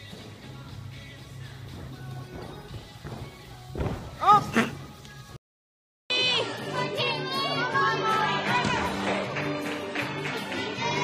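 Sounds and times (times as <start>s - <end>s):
background music: 0.0s - 5.4s, 6.1s - 11.0s
children shouting and cheering: 6.1s - 9.0s.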